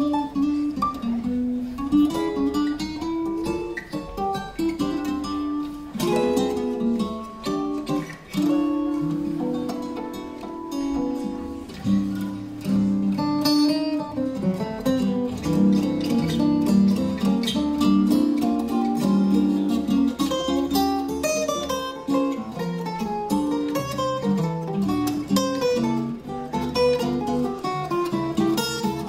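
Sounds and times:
two guitars playing a duet: 0.0s - 29.0s.

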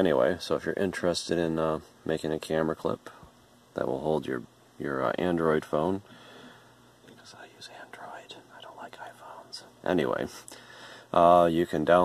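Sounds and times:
person whispering: 7.1s - 9.9s.

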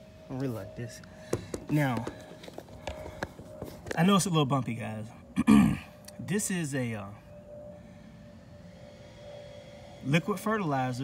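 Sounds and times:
faint steady hum: 0.0s - 11.0s
light knocks and taps: 1.3s - 4.0s.

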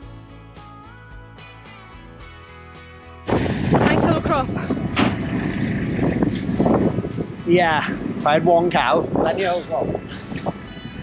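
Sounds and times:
tractor engine running: 3.3s - 8.9s.

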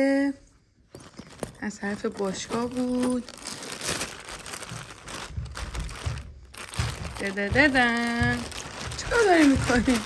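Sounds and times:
plastic bag rustling and crinkling: 0.9s - 10.0s
low handling knocks: 4.2s - 10.0s.

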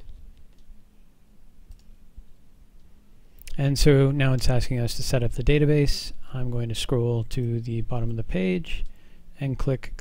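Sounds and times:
keyboard and mouse clicks: 0.0s - 0.7s, 1.7s - 2.0s
low steady hum: 0.0s - 10.0s.

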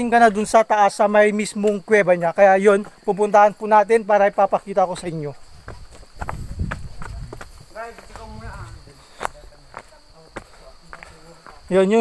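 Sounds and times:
man speaking: 0.0s - 5.4s, 7.0s - 12.0s
footsteps on rocky trail: 1.6s - 12.0s.

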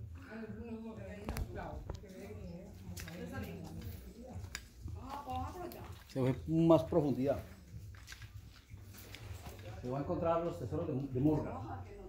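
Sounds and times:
people talking quietly: 0.0s - 12.0s.

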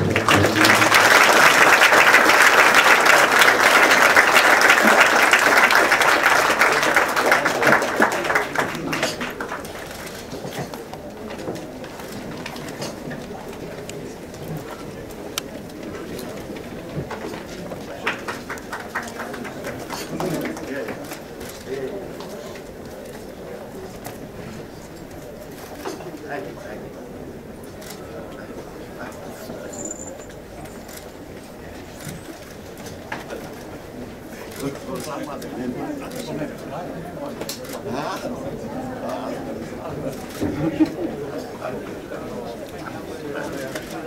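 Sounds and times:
murmur of many people talking: 0.0s - 44.0s.

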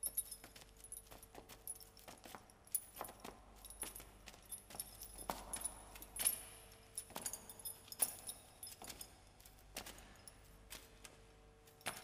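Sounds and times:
metal chains jangling: 0.0s - 10.6s, 11.7s - 12.0s.

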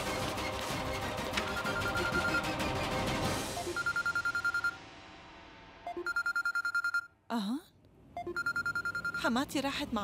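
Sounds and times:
mobile phone ringing trill: 1.4s - 2.5s, 3.6s - 4.8s, 5.9s - 7.1s, 8.2s - 9.3s.

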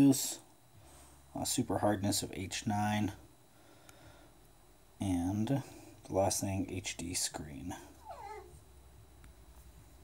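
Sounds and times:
dog whining: 8.0s - 8.6s.

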